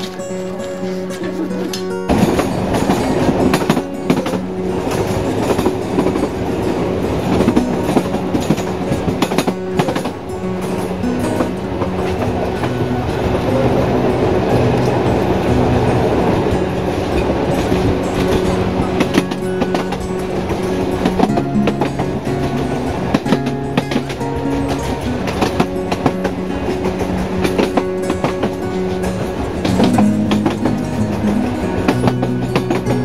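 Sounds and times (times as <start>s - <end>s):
train wheels clickety-clack: 1.7s - 33.0s.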